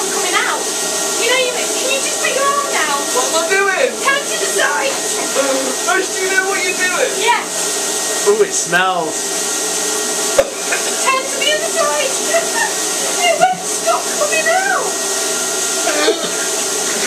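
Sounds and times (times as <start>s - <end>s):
blower running: 0.0s - 17.0s
spray gun hissing: 0.0s - 17.0s.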